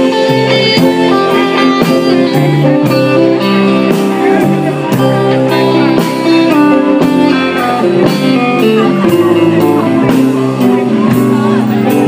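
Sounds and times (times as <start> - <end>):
bent guitar notes: 0.0 - 12.0
live band playing: 0.0 - 12.0.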